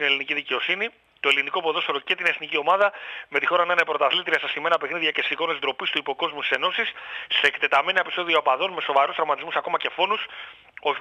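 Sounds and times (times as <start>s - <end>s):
man reading aloud: 0.0s - 11.0s.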